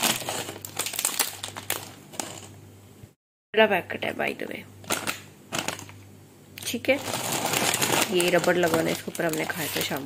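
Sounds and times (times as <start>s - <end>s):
snack packets crinkling: 0.0s - 2.5s, 4.9s - 6.0s, 7.0s - 10.0s.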